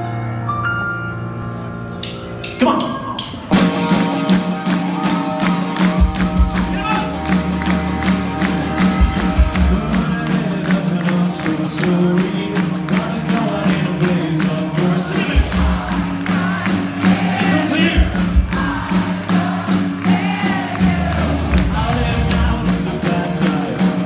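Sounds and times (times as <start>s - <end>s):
live rock band playing: 0.0s - 24.0s
person singing: 8.5s - 24.0s.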